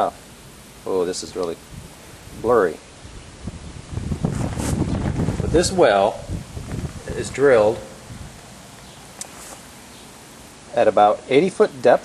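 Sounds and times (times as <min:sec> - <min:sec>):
wind buffeting microphone: 0:01.6 - 0:08.6.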